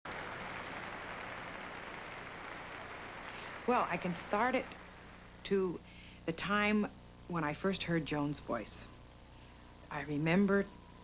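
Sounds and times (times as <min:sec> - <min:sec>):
steady hiss: 0:00.1 - 0:07.3.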